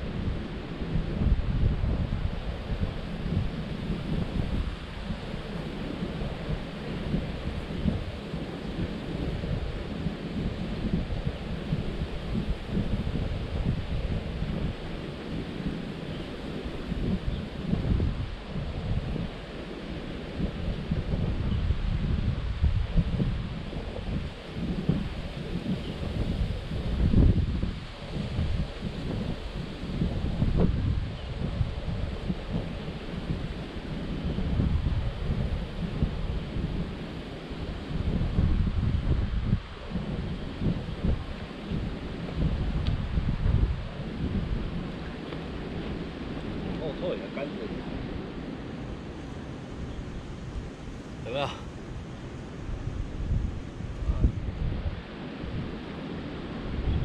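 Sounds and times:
wind buffeting microphone: 0:00.0 - 0:57.0
shallow river rushing: 0:31.7 - 0:56.9.

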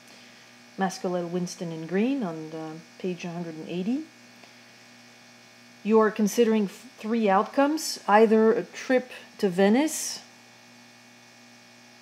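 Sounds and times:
faint electrical hum: 0:00.0 - 0:12.0
person speaking: 0:00.8 - 0:04.1.

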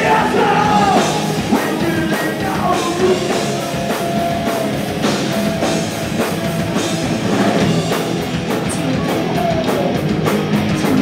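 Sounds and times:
bass guitar: 0:00.0 - 0:11.0
drum kit: 0:00.0 - 0:11.0
electric guitar: 0:00.0 - 0:11.0.

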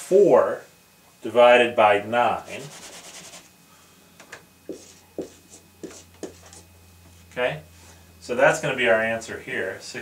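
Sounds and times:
marker writing on whiteboard: 0:04.7 - 0:06.7.

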